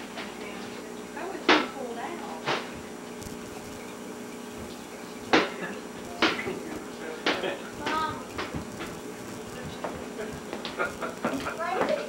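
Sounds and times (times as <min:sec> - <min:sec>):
person speaking: 0:06.1 - 0:10.5
sharp knocks and clatters: 0:06.2 - 0:06.6, 0:07.2 - 0:12.0.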